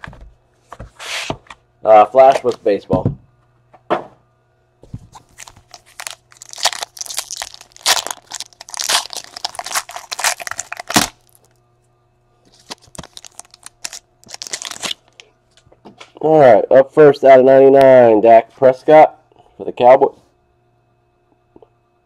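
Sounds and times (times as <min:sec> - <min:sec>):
foil wrapper tearing and crinkling: 0:05.2 - 0:11.5, 0:12.5 - 0:15.2.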